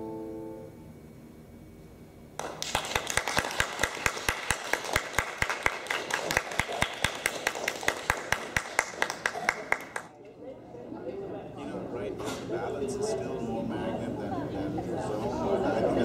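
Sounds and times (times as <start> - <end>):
audience applauding: 2.4 - 10.1
nearby hands clapping: 2.4 - 10.1.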